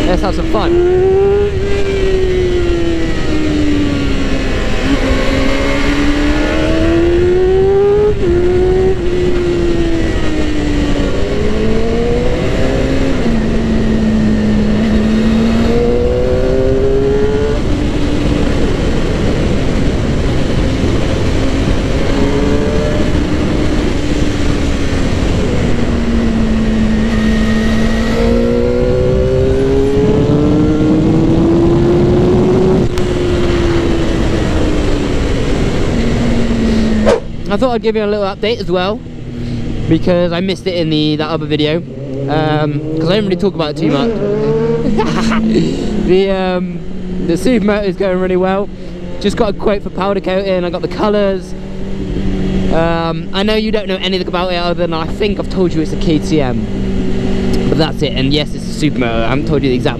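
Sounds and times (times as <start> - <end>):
motorcycle engine accelerating: 0.0 - 59.9
wind noise: 0.0 - 59.9.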